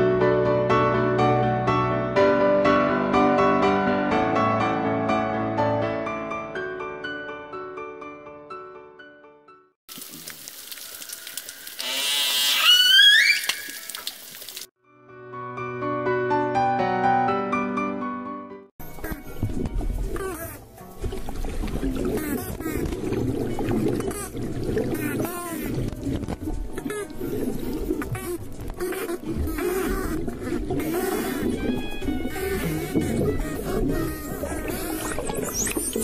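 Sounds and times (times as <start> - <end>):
piano music: 0.0 - 9.7, 14.8 - 36.0
dolphin whistles: 12.0 - 13.9, 30.8 - 36.0
watery hiss: 29.1 - 36.0.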